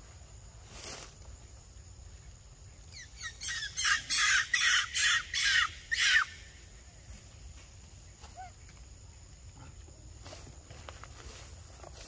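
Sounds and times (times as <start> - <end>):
harsh animal calls: 3.0 - 6.5.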